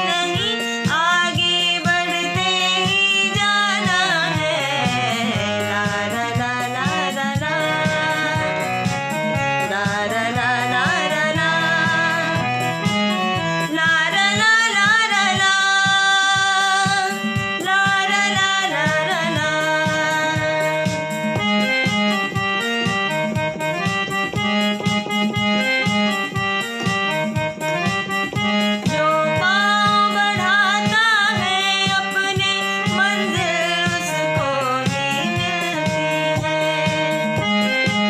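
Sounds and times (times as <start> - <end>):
woman singing: 0.0 - 21.4, 28.8 - 37.4
instrumental accompaniment with beat: 0.0 - 38.0.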